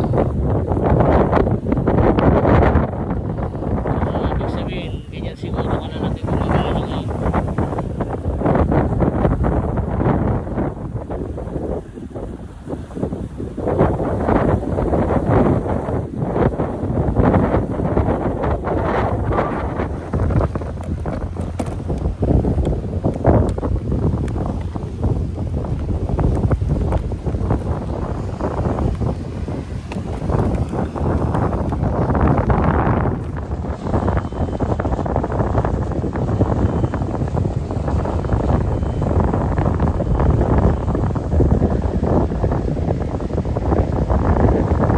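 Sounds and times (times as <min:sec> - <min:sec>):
wind buffeting microphone: 0:00.0 - 0:44.9.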